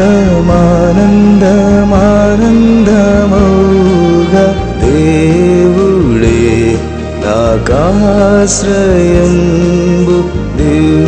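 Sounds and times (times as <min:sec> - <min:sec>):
instrumental accompaniment: 0:00.0 - 0:11.0
person singing sliding melody: 0:00.0 - 0:11.0.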